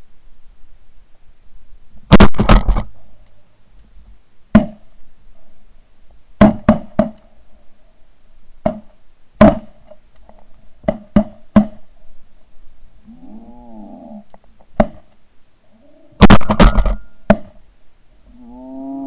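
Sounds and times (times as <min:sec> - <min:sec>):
sharp shot-like bangs: 0:02.1 - 0:02.8, 0:16.2 - 0:17.1.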